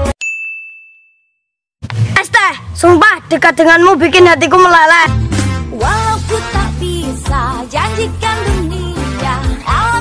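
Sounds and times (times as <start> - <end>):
high bell-like ding: 0.2 - 1.6
music: 4.7 - 10.0.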